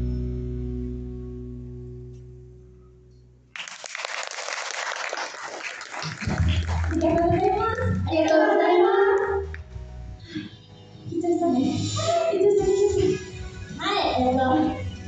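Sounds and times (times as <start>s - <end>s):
audience applause and cheers: 3.6s - 9.6s.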